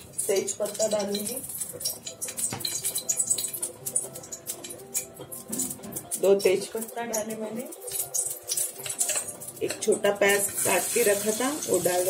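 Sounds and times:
hot oil crackling and popping: 0:00.0 - 0:12.0.

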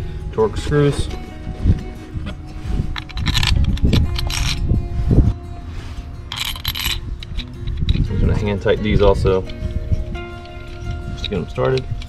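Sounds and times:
background music: 0:00.0 - 0:12.0
metallic clinks and scrapes of screws: 0:02.9 - 0:04.7, 0:06.3 - 0:08.6, 0:09.3 - 0:12.0.

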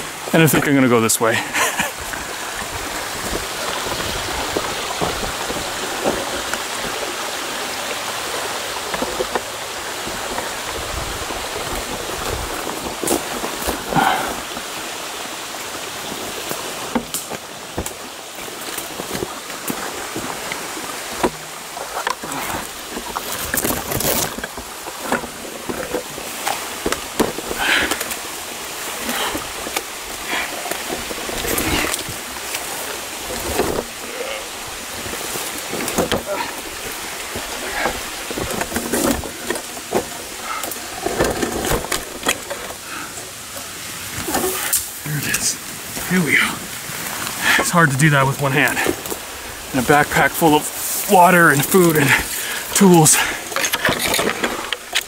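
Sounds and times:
forest creek rushing: 0:00.0 - 0:55.0
footsteps on slope: 0:01.8 - 0:06.9
brush rustling and snapping: 0:16.4 - 0:34.0.

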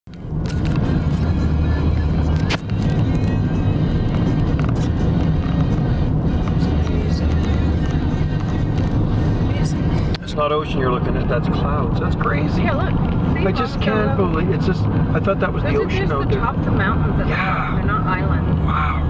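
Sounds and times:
car engine rumble: 0:00.1 - 0:19.0
tyres on road: 0:00.1 - 0:19.0
music with vocals: 0:00.4 - 0:11.7.

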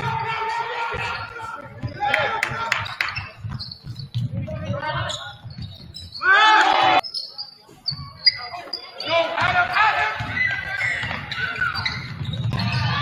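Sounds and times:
basketball bouncing: 0:00.0 - 0:06.2, 0:09.4 - 0:13.0
sneaker squeaks on hardwood: 0:00.0 - 0:06.3, 0:06.9 - 0:13.0.

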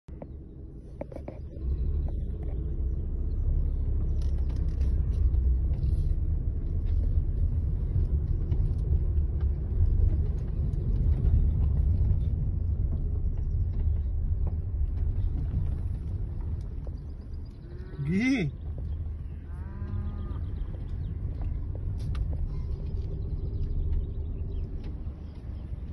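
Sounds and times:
car rumbling over rough track: 0:00.1 - 0:25.9.

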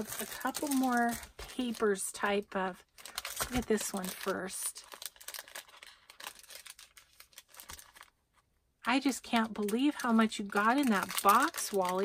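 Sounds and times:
paper rustling and crackling: 0:00.0 - 0:02.0, 0:03.0 - 0:08.2, 0:09.3 - 0:12.0.

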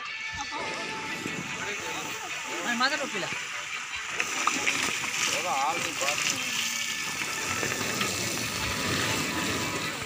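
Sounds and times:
hose water spraying: 0:00.4 - 0:10.0.

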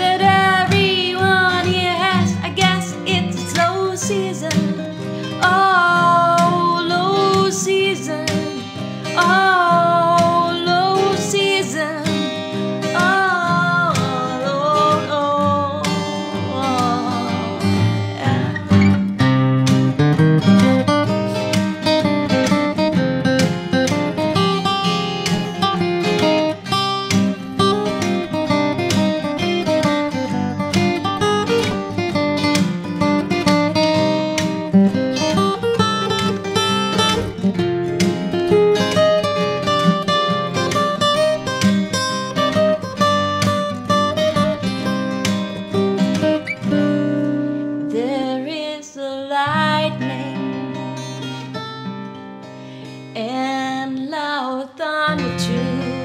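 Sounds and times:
strummed guitar chords: 0:00.0 - 0:48.7, 0:49.4 - 0:53.7
picked acoustic guitar melody: 0:00.0 - 0:56.0.

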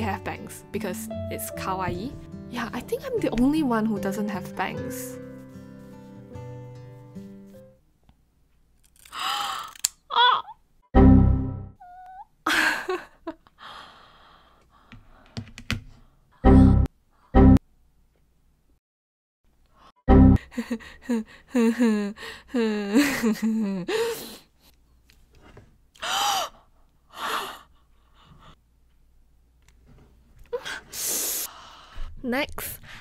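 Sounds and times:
scissors snipping hair: 0:08.8 - 0:10.0
breathy gasp: 0:09.0 - 0:09.8
woman gasping: 0:09.0 - 0:10.4, 0:20.4 - 0:23.0, 0:26.0 - 0:28.6, 0:30.5 - 0:32.1
short vocal cry: 0:09.2 - 0:10.6
woman laughing: 0:12.4 - 0:13.6, 0:20.4 - 0:24.0.

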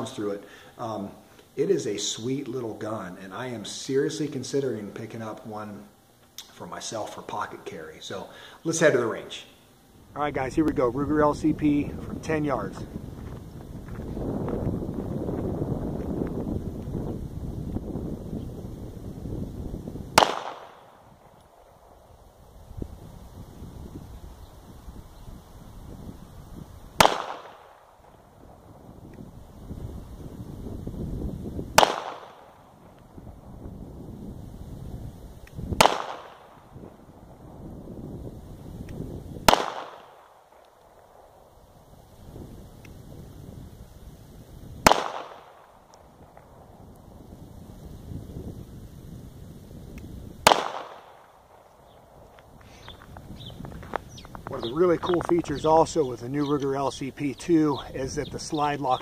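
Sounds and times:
pistol shots with echo: 0:20.2 - 0:21.1, 0:27.0 - 0:28.0, 0:31.8 - 0:32.7, 0:35.8 - 0:36.6, 0:39.4 - 0:40.7, 0:44.8 - 0:45.8, 0:50.4 - 0:51.6.

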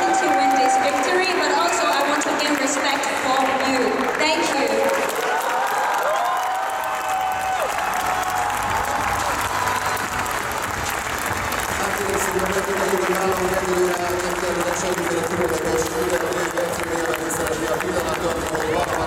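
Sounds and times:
arena crowd applauding: 0:00.0 - 0:19.0.

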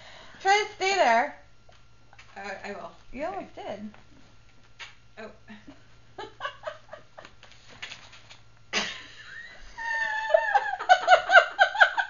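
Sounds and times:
woman squealing and giggling: 0:09.4 - 0:11.0.

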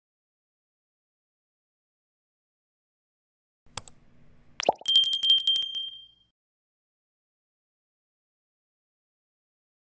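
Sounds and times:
click: 0:03.7 - 0:04.0
high bell ding with trilling rattle: 0:04.8 - 0:06.3.

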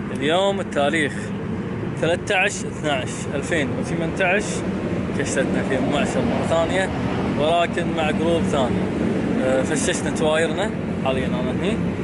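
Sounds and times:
man speaking: 0:02.0 - 0:11.9.

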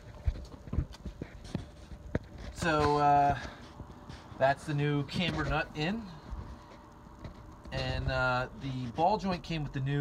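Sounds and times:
footsteps: 0:00.0 - 0:09.2.

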